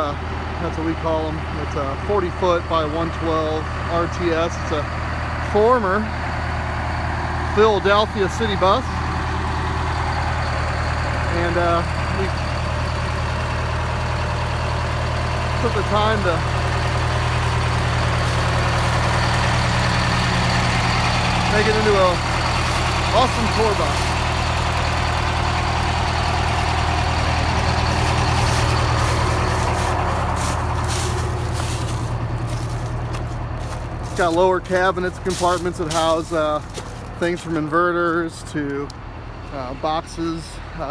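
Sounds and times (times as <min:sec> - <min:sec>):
diesel bus engine idling: 0:00.0 - 0:40.9.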